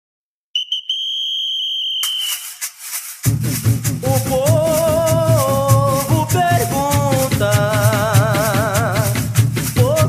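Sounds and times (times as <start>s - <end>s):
whistle blasts: 0.5s - 3.2s
rattling percussion: 2.0s - 10.0s
deep drums beating: 3.2s - 10.0s.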